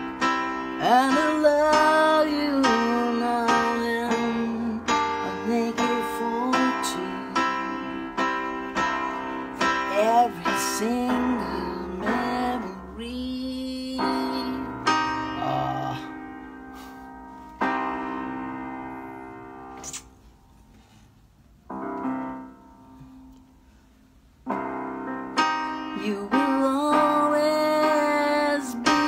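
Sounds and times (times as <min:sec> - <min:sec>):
electronic keyboard piano chords: 0:00.0 - 0:20.8, 0:21.4 - 0:29.0.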